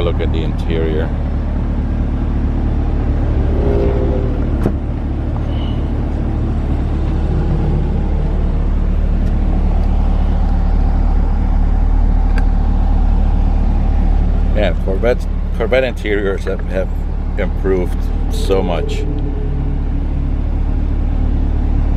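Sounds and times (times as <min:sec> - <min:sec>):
car engine idling: 0:00.0 - 0:21.9.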